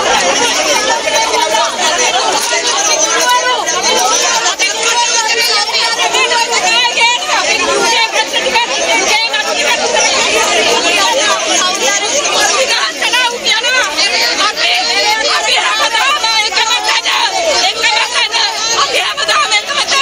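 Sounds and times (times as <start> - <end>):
crowd talking and shouting: 0.0 - 20.0
woman shouting: 0.5 - 20.0.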